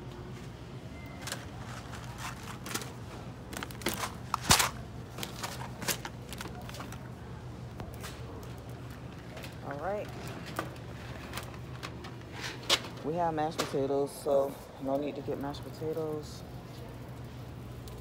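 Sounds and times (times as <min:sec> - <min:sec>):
groceries clinking in wire cart: 0:01.0 - 0:18.0.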